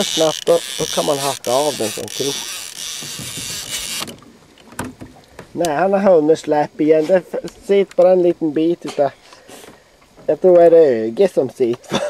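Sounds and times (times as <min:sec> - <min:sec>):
fishing reel whirring: 0:00.0 - 0:04.2.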